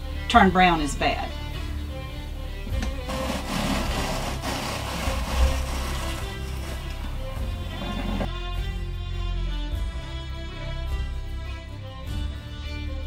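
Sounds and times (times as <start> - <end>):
background music: 0.0 - 13.0
apple peeler rasping: 2.8 - 8.3.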